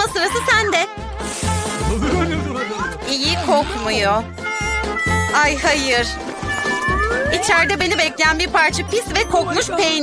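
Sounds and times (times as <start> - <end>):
upbeat music with bass beat: 0.3 - 10.0.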